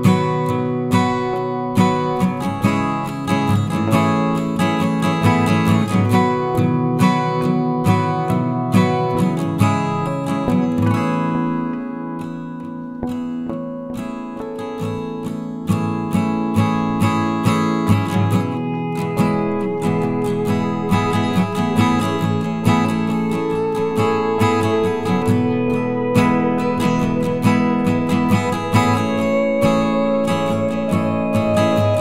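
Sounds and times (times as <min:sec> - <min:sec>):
acoustic guitar strumming: 0:00.0 - 0:32.0.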